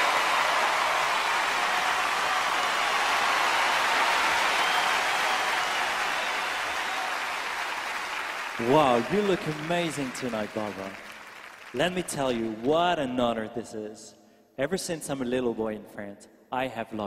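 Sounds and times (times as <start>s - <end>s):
audience applauding: 0.0s - 12.6s.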